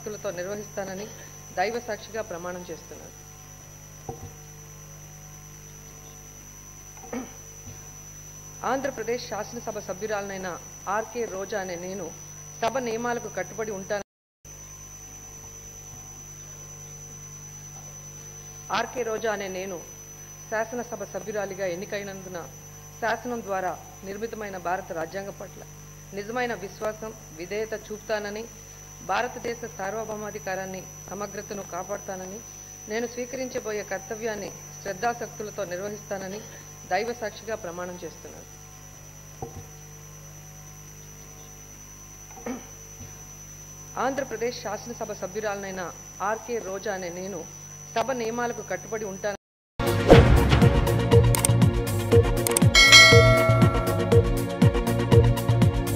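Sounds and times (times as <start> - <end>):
electrical mains hum: 0.0 - 49.4, 51.1 - 55.8
thin high whine: 52.6 - 54.8.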